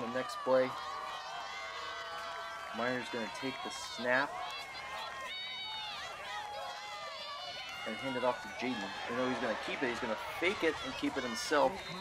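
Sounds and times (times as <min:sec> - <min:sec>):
voices shouting and calling out: 0:00.0 - 0:12.0.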